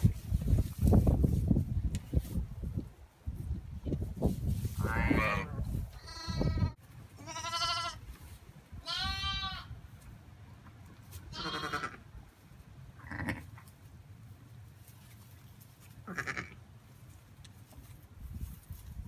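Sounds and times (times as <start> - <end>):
lambs bleating: 4.8 - 8.0, 8.8 - 9.7, 11.3 - 12.0, 13.0 - 13.5, 16.1 - 16.6.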